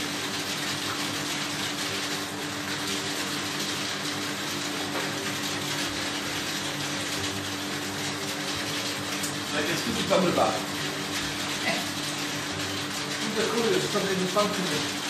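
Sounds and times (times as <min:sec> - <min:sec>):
circulation pump hum: 0:00.0 - 0:15.0.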